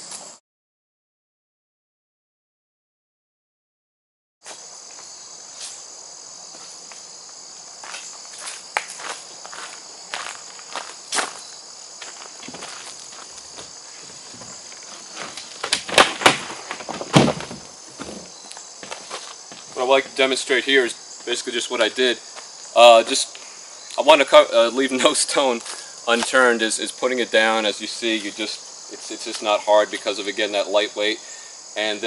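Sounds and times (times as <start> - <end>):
crickets chirping: 4.4 - 32.0
footsteps on gravel: 7.8 - 20.4
canoe hull knocking on gravel: 12.4 - 20.2.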